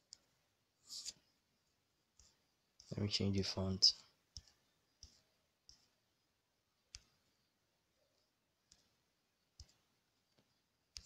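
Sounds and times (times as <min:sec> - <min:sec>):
fingertip taps on touchscreen: 0:08.6 - 0:11.0.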